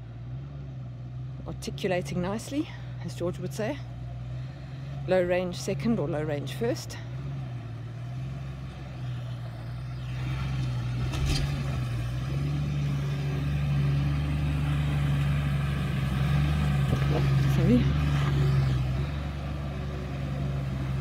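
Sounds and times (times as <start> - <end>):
vehicle engine pulling uphill: 0.0 - 21.0.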